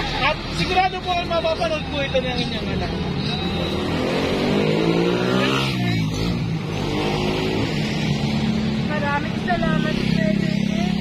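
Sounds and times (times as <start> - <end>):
vehicle passing by: 3.6 - 11.0.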